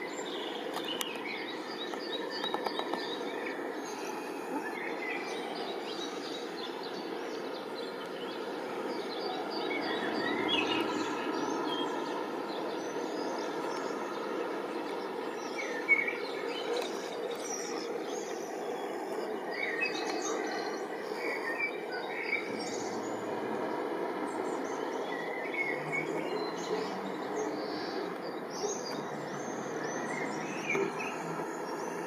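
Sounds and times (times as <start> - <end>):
outdoor background noise: 0.0 - 32.0
small birds chirping: 0.0 - 32.0.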